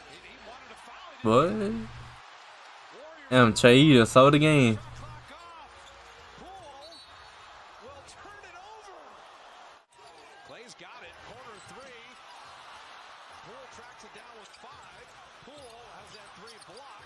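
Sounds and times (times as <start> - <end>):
sneaker squeaks: 6.8 - 7.2.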